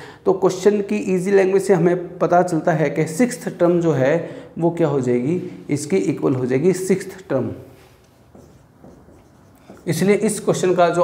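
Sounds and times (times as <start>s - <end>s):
marker pen writing on board: 8.0s - 10.8s.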